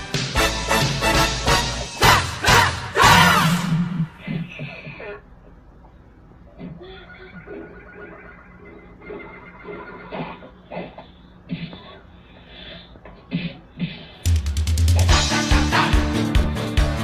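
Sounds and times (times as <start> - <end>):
fight scene sounds: 2.0 - 4.1.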